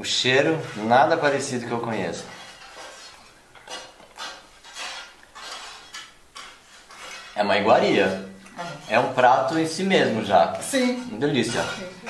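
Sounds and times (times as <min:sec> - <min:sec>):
fork scraping ceramic plate: 0:00.4 - 0:12.0.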